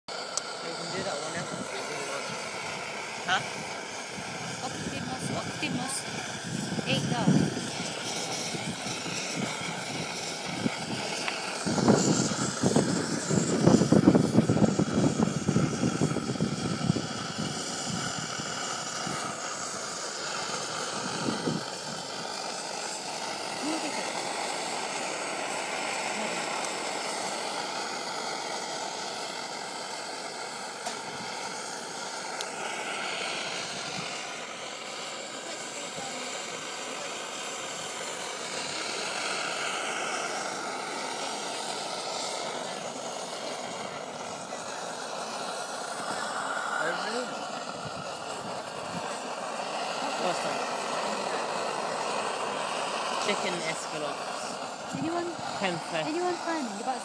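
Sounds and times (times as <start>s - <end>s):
stove burner hissing: 0.1s - 57.0s.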